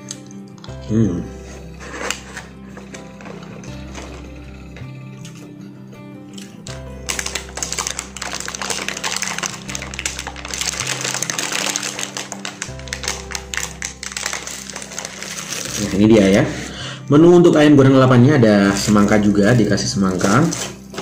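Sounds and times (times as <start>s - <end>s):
background music with bass: 0.0s - 21.0s
plastic wrap crinkling: 1.8s - 4.3s, 7.0s - 16.6s, 18.7s - 21.0s.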